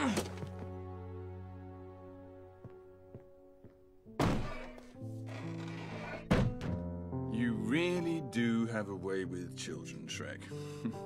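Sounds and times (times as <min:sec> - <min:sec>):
quiet background music: 0:00.0 - 0:11.0
door thud: 0:04.2 - 0:04.8, 0:06.1 - 0:06.9
heavy door slamming: 0:05.4 - 0:06.9.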